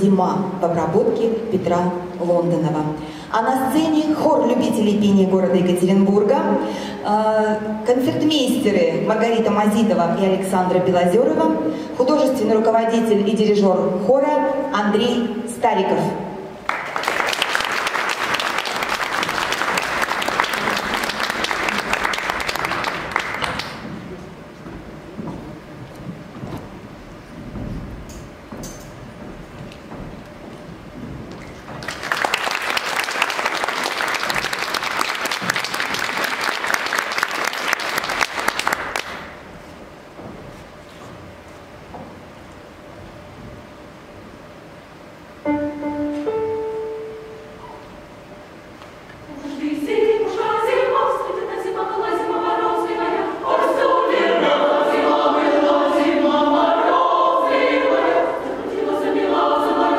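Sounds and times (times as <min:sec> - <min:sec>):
audience applause: 0:16.6 - 0:23.9, 0:31.8 - 0:39.4
short held notes: 0:45.4 - 0:48.0.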